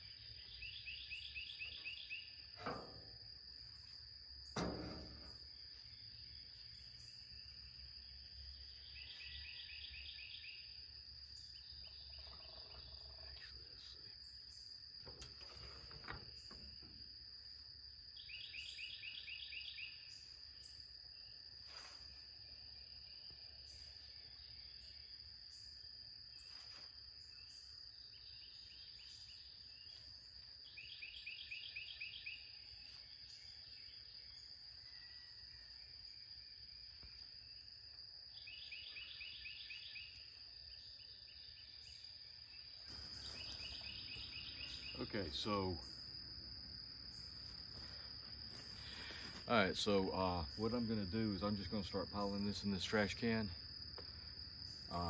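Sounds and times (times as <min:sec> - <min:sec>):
insect chorus whine: 0:00.0 - 0:55.0
rapid pulsing insect trill: 0:00.0 - 0:55.0.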